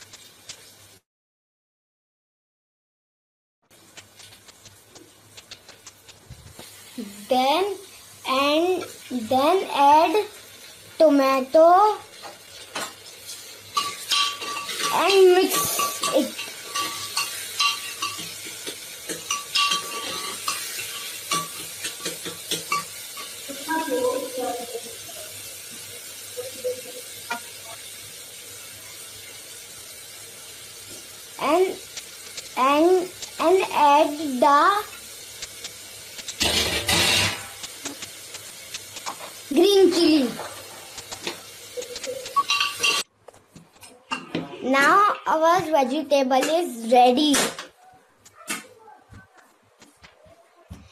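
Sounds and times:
food sizzling: 0:00.0 - 0:01.1, 0:03.7 - 0:47.5
spoon clinking against pot: 0:13.8 - 0:23.4, 0:41.9 - 0:43.0.

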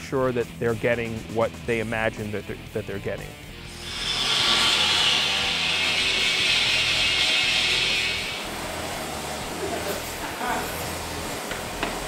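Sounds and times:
background music: 0:00.0 - 0:12.0
grinder grinding iron: 0:03.6 - 0:12.0.

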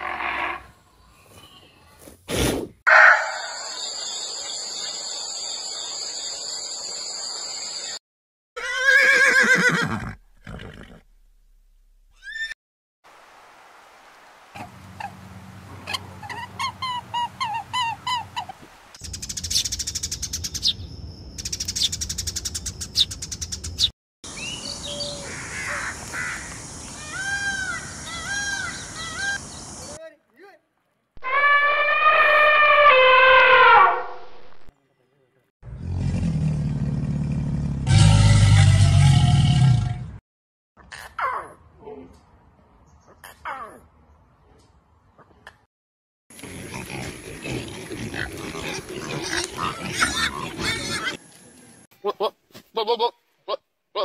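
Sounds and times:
chirps and twittering calls: 0:03.2 - 0:08.0, 0:19.0 - 0:30.0
falling animal call: 0:31.2 - 0:34.4.

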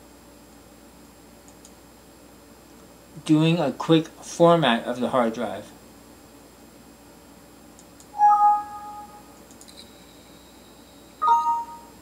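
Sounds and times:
computer alert chimes: 0:08.2 - 0:09.3, 0:11.2 - 0:12.0
faint high-pitched tone: 0:08.2 - 0:10.6, 0:11.2 - 0:12.0.

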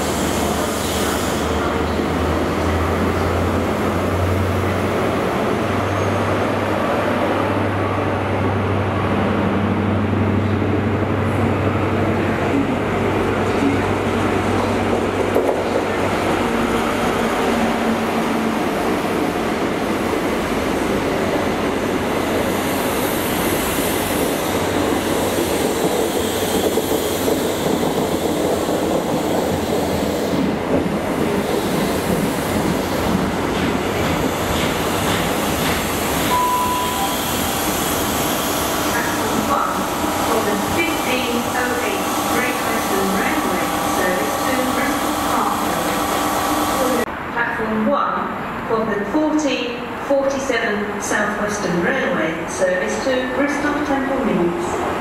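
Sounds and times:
train wheels rumbling on rails: 0:00.0 - 0:47.2
short beep: 0:36.3 - 0:37.3.

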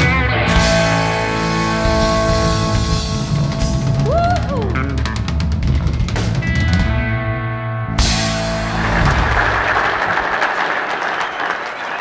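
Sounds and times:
live rock song: 0:00.0 - 0:10.6
audience applauding: 0:08.5 - 0:12.0.

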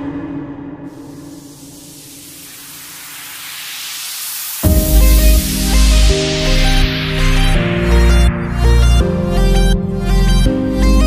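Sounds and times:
low synth tones: 0:00.0 - 0:11.0
white-noise riser: 0:00.7 - 0:09.5.

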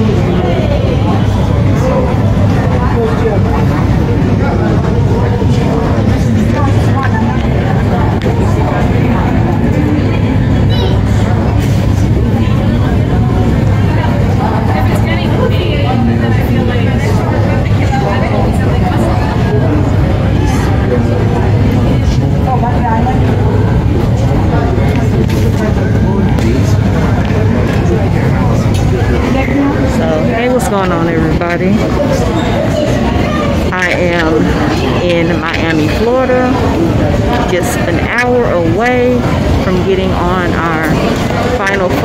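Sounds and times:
indistinct voices: 0:00.0 - 0:42.0.

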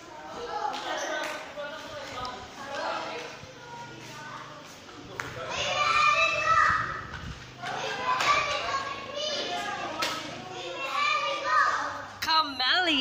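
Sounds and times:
children shouting and chattering: 0:00.0 - 0:13.0.

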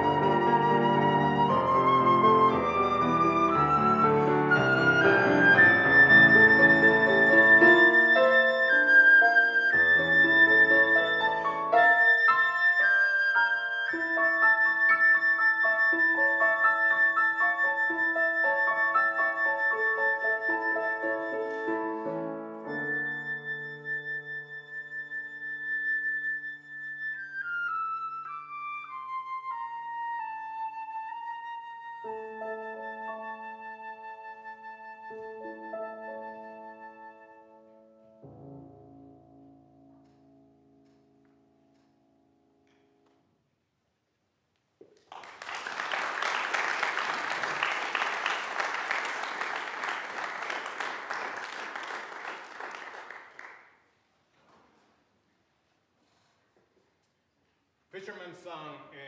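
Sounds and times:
flute and piano duet: 0:00.0 - 0:41.1, 0:45.5 - 0:53.6.

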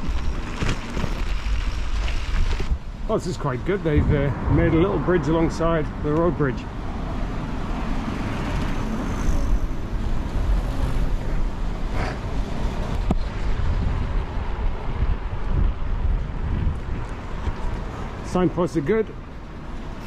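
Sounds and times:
bike tyres rolling over wooden planks: 0:00.0 - 0:02.9
wind rumble on microphone: 0:00.0 - 0:06.0, 0:06.7 - 0:18.2.

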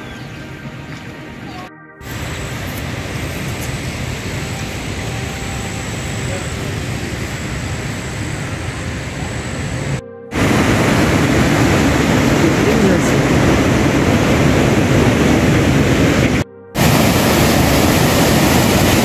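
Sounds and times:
steady rain: 0:02.0 - 0:19.0.

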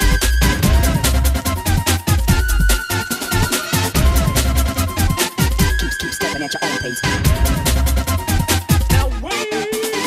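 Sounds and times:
heavy deep bass: 0:00.0 - 0:06.0, 0:07.0 - 0:09.3
broken-beat drums: 0:00.0 - 0:10.0.

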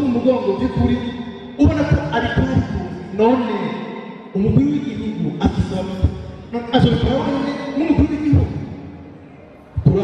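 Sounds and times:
man vocalising into microphone: 0:00.0 - 0:08.8.

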